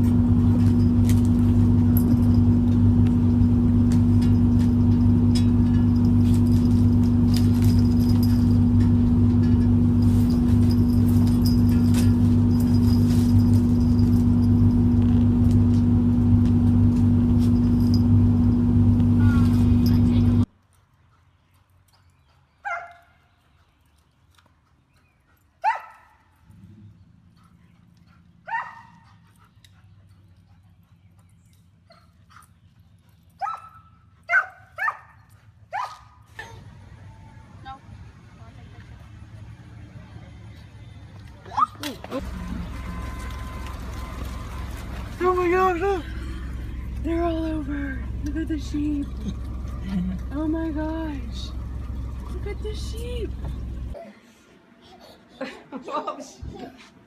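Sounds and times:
loud mechanical hum: 0.0 - 20.5, 42.0 - 54.0
dog barking: 22.6 - 23.0, 25.6 - 26.2, 28.5 - 29.0, 33.4 - 36.2.

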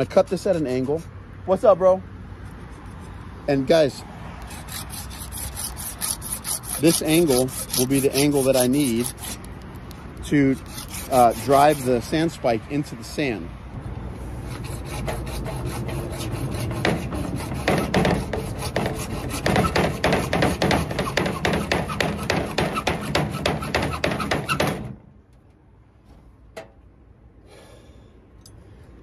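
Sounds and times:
hacksaw cutting plastic pipe: 4.4 - 9.5, 10.3 - 12.4, 14.5 - 25.0.

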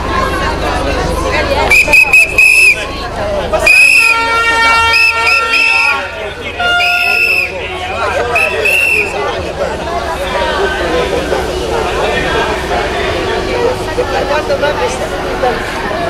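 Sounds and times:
crowd chatter: 0.0 - 16.0
shrill whistle blasts: 1.7 - 2.8, 3.6 - 6.0, 6.6 - 7.6, 8.3 - 9.2
held horn-like note: 3.7 - 9.2.

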